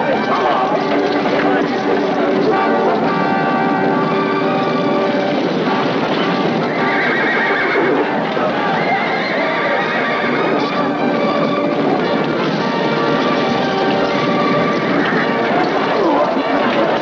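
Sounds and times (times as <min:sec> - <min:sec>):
background music with held notes: 0:00.0 - 0:17.0
horses galloping: 0:00.0 - 0:17.0
horses neighing: 0:00.0 - 0:17.0.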